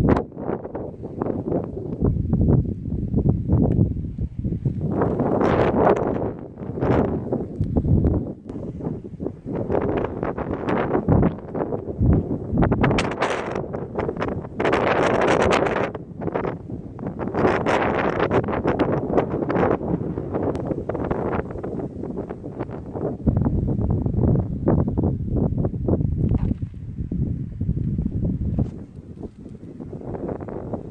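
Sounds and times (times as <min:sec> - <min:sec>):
wind buffeting microphone: 0:00.0 - 0:30.9.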